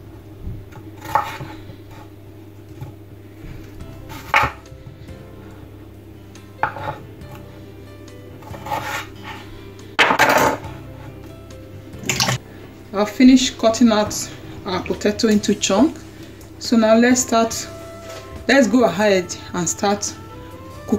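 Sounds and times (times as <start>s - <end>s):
knife chopping on a cutting board: 0.7s - 2.0s, 4.1s - 4.6s, 6.6s - 7.4s, 8.4s - 9.4s.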